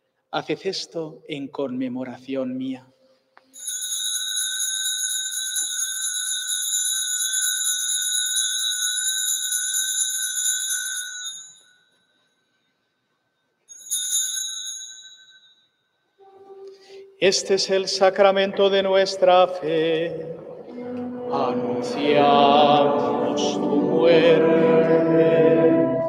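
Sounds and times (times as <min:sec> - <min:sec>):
altar bell ringing: 0:03.5 - 0:12.5, 0:13.7 - 0:16.0.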